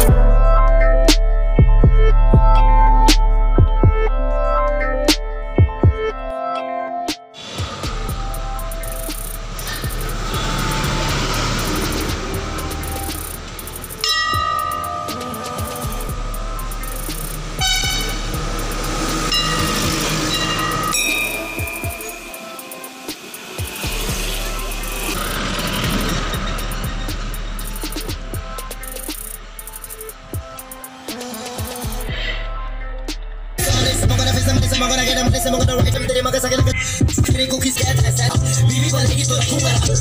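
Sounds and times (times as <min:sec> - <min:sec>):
vehicle horns honking: 0:07.4 - 0:29.8
heavy truck passing: 0:07.4 - 0:32.7
road traffic passing: 0:07.4 - 0:40.0.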